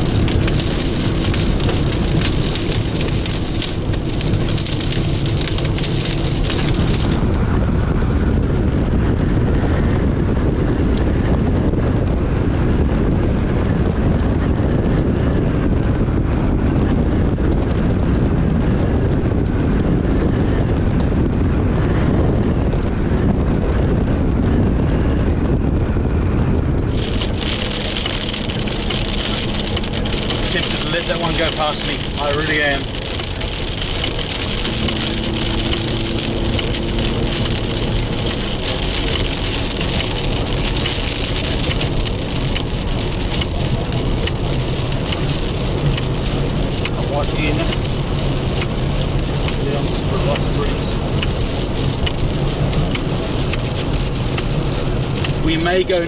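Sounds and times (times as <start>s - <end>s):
rain hitting vehicle roof: 0.0s - 7.5s, 26.9s - 56.0s
low road and engine rumble: 0.0s - 56.0s.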